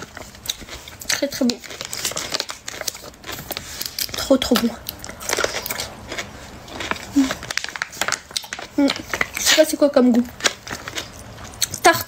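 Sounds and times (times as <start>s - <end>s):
person chewing crisp pickle: 0.0s - 11.9s.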